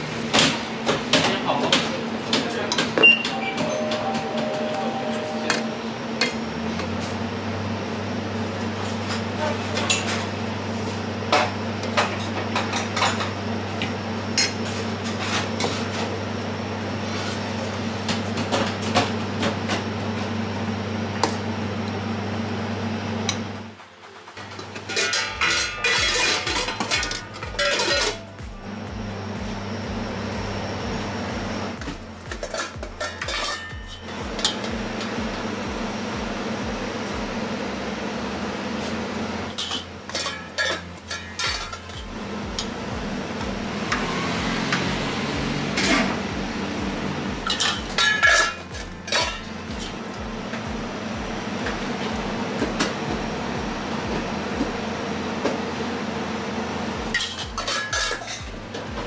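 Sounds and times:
steady low hum: 0.0 - 59.0
kitchenware clinking and clattering: 24.4 - 28.3, 32.3 - 34.7, 39.5 - 42.1, 47.5 - 49.9, 57.1 - 58.9.

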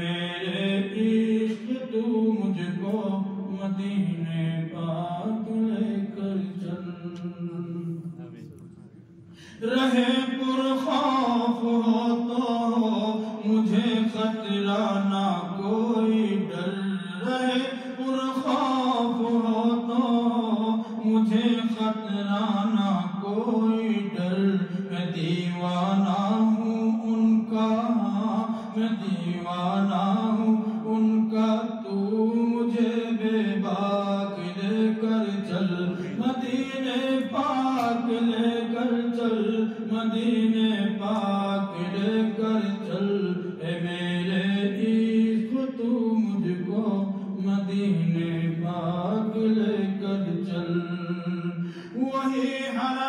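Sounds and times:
man chanting unaccompanied: 0.0 - 53.0
short breaths: 9.2 - 9.6, 51.6 - 52.0.

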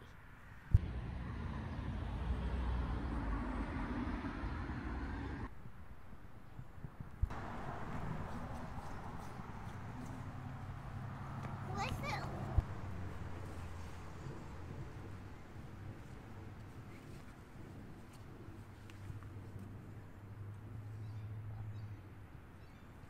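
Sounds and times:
wind rumbling on microphone: 0.0 - 22.6.

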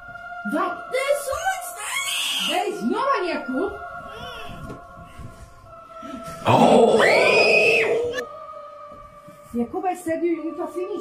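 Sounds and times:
child screaming and crying: 6.7 - 8.2.

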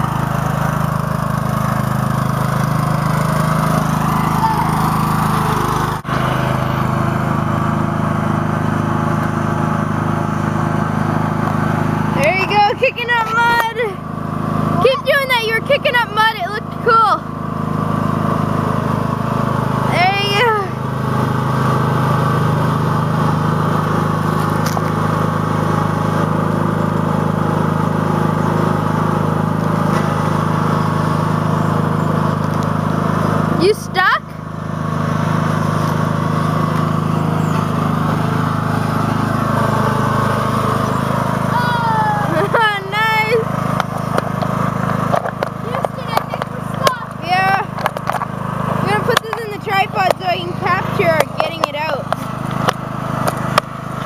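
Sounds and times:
lawn tractor engine under load: 0.0 - 54.0.

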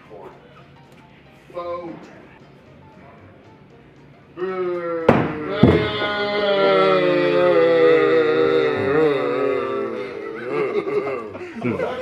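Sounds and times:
man shouting long note: 4.4 - 9.7
men laughing: 5.7 - 12.0.

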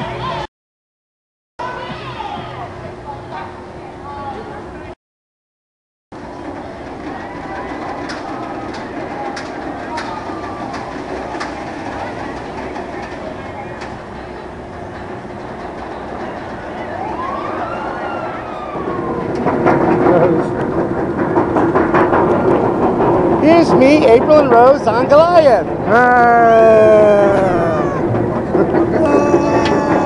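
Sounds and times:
roller coaster chain lift rumble: 6.2 - 30.0
people talking: 23.4 - 28.0, 28.6 - 30.0.

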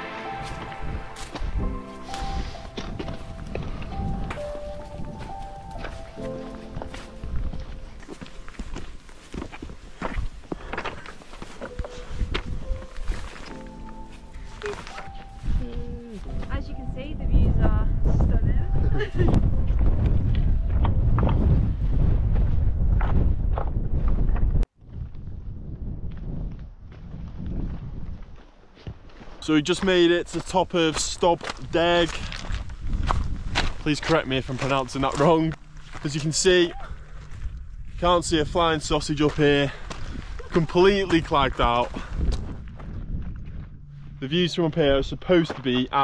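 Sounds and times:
wind buffeting microphone: 0.3 - 11.1, 11.7 - 13.8, 15.2 - 29.0, 30.2 - 46.0
footsteps on loose stones: 0.3 - 16.7, 26.1 - 46.0.

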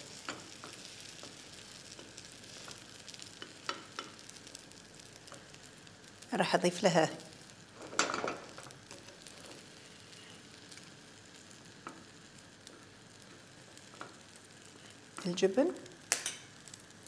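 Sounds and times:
egg sizzling in oil: 0.0 - 17.0.

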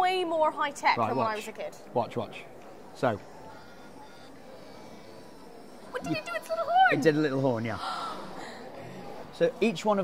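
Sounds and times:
large hall background noise: 0.0 - 10.0.

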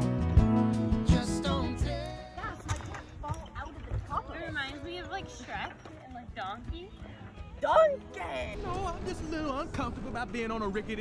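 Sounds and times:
people talking and laughing: 1.2 - 11.0.

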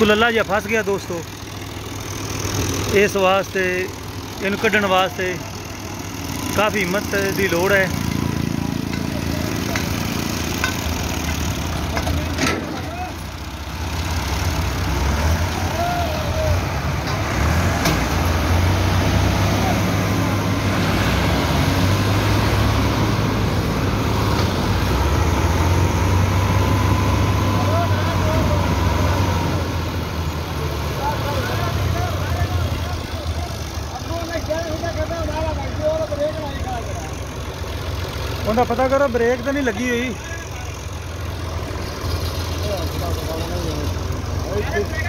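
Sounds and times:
tractor engines under heavy load: 0.0 - 45.0.

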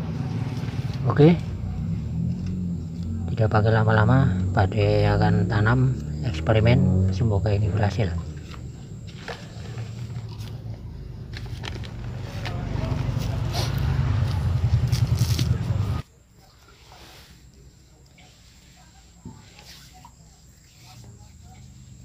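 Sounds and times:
steady low rumble: 0.0 - 16.0.

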